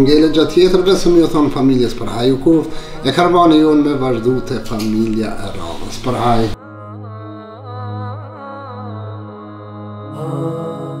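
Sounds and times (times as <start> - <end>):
slow held chords: 0.0 - 11.0
low drone: 2.6 - 11.0
high shimmering swell: 10.1 - 11.0.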